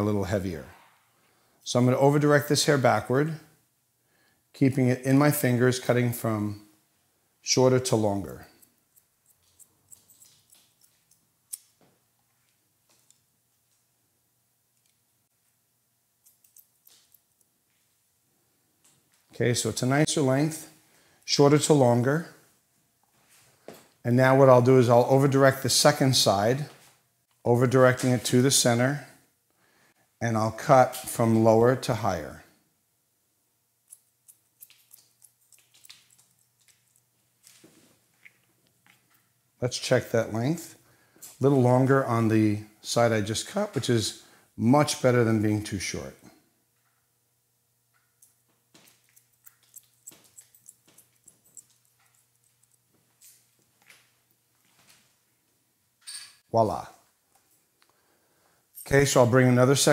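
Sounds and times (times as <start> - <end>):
scissors snipping hair: 8.6 - 11.8.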